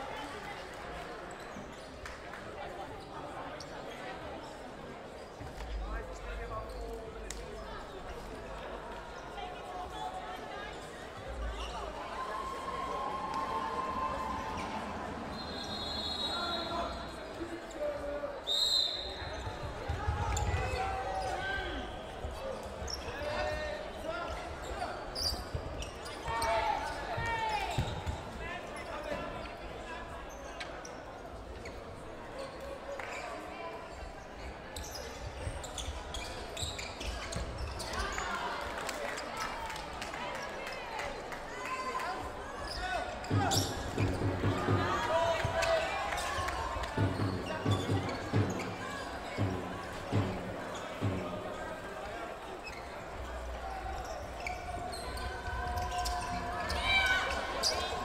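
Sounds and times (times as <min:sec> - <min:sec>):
players shouting: 0:12.0 - 0:17.2, 0:42.7 - 0:52.5.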